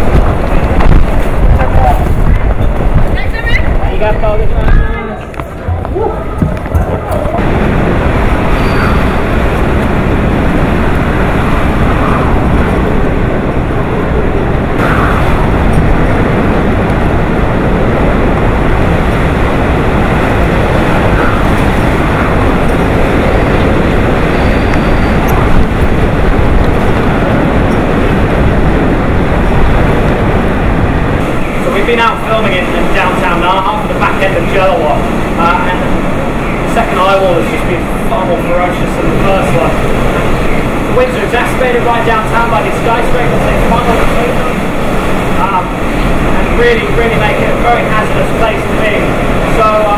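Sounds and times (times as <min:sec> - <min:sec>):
strong wind and rain: 0:00.0 - 0:49.9.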